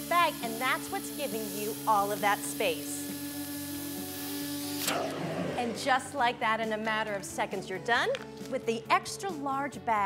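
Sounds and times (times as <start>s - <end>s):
vacuum cleaner suction hiss: 0.0s - 6.1s
background music: 0.0s - 10.0s.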